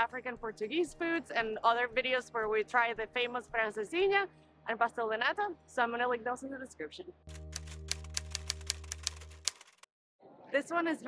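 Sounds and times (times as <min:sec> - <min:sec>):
typewriter key clicks: 0:07.6 - 0:09.8.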